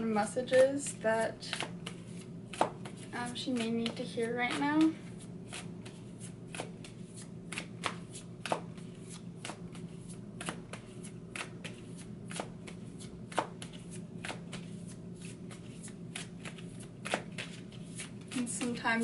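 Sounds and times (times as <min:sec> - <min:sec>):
cards being shuffled: 0:01.5 - 0:18.8.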